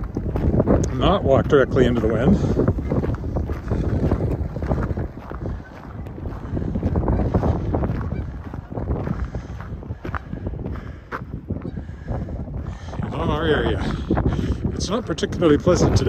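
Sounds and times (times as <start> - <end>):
wind buffeting microphone: 0.0 - 16.0
geese honking: 5.4 - 9.6, 11.6 - 12.9.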